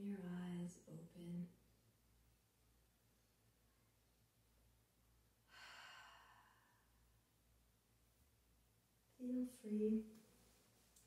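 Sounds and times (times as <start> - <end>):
woman sighing: 5.5 - 6.7.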